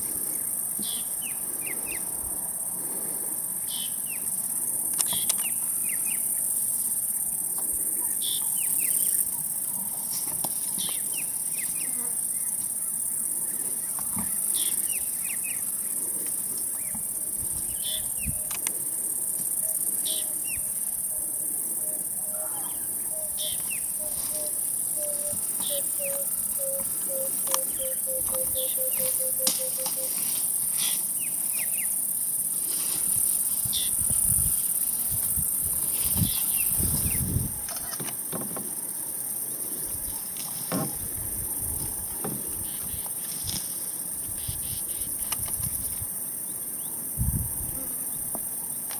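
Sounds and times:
high insect drone: 0.0 - 48.9
bird cooing: 21.8 - 30.2.

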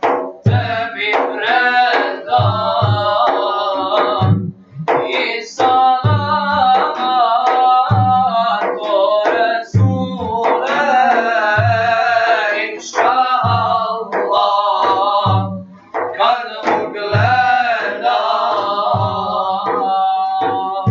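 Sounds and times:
frame drum beats: 0.0 - 20.9
group of men singing: 0.4 - 20.9.

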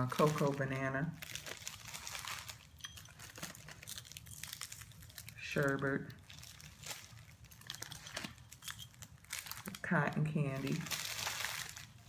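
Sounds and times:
plastic bags crinkling: 0.0 - 12.0.

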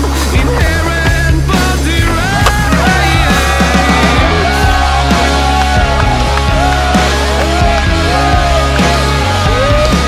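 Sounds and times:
music soundtrack: 0.0 - 10.0.

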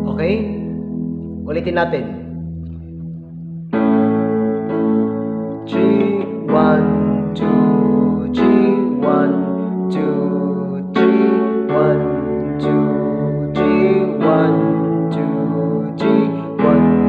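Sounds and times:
electronic keyboard chords: 0.0 - 17.0.

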